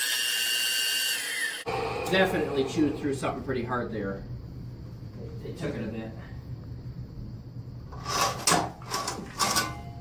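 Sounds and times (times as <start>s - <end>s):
steel cable scraping and clattering: 7.9s - 9.9s.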